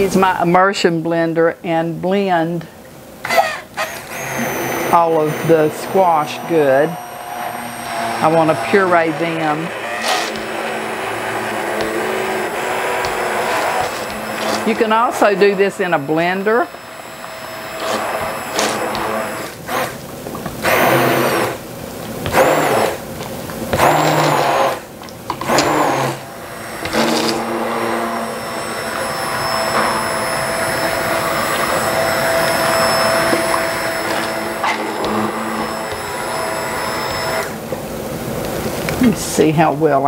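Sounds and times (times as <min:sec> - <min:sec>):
immersion blender motor whirring: 0:03.2 - 0:21.6, 0:22.2 - 0:23.0, 0:23.7 - 0:37.6.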